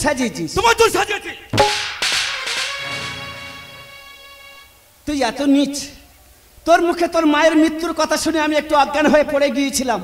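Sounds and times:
sudden loud crash: 1.6 - 3.7.

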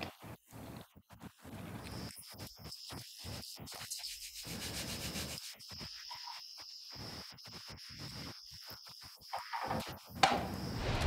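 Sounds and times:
crickets chirping: 4.6 - 11.0.

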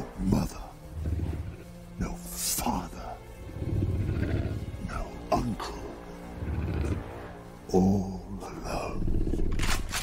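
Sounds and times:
low film music: 0.0 - 10.0
monster growling: 3.3 - 5.2, 6.0 - 7.4.

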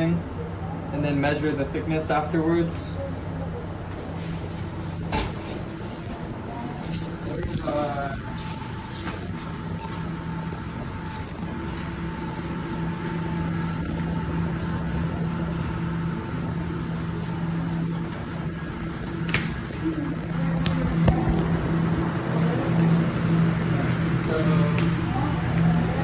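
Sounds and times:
machinery and air handling hum: 0.0 - 26.0.

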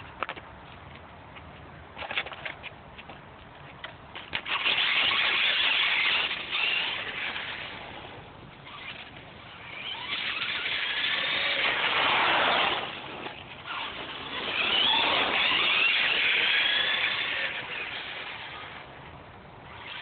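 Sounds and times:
electric motor whining: 4.4 - 19.0.

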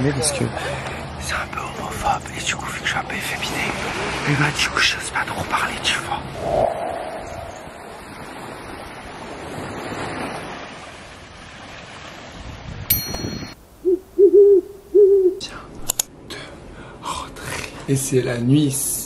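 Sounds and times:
light surf: 0.0 - 13.6
wind: 0.0 - 19.0
owl hoots: 6.4 - 7.9, 13.8 - 15.5.

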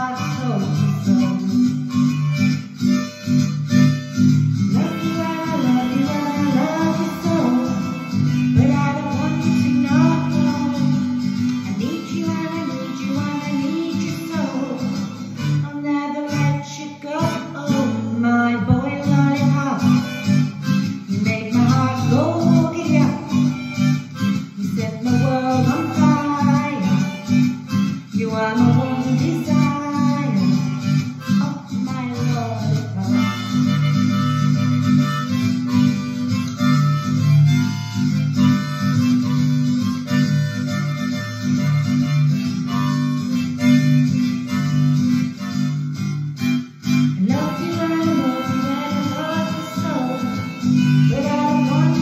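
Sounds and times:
woman singing: 0.0 - 2.2, 4.6 - 34.9, 46.9 - 52.0
bass: 0.0 - 52.0
harmonica solo: 0.0 - 52.0
strummed acoustic guitar: 0.0 - 52.0.

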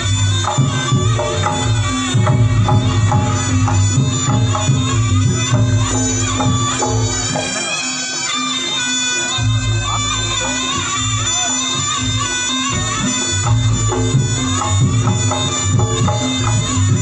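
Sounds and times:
drums pulsing: 0.0 - 17.0
shrill reed trumpet melody: 0.0 - 17.0.

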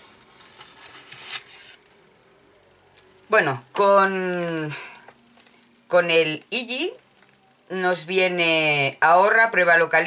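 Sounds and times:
paper and packaging rustling: 0.0 - 2.0, 4.3 - 5.7.

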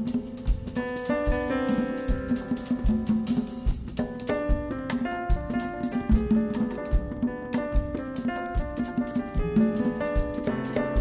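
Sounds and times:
drum kit: 0.0 - 11.0
grand piano: 0.0 - 11.0
hand drums: 0.0 - 11.0.

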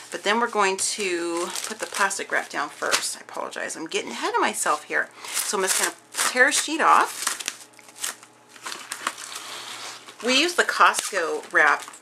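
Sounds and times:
plastic wrap crinkling: 0.0 - 3.2, 5.3 - 12.0.

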